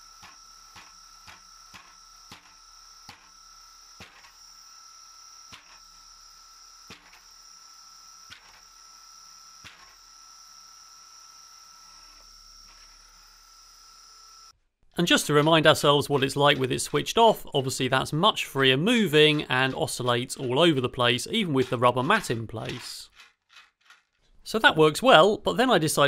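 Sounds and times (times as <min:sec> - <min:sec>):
high whine of spinning flywheel: 0:00.0 - 0:14.5.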